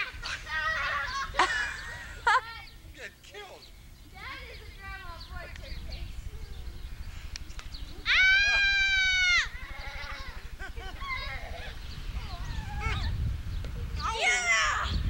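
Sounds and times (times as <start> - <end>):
children chattering: 4.0 - 7.1, 7.8 - 13.2
child screaming: 8.0 - 10.4, 14.0 - 15.0
child squealing: 8.1 - 10.4.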